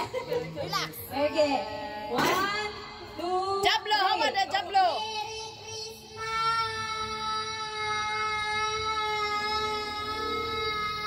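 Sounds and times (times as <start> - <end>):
child singing a long high note: 5.1 - 11.0.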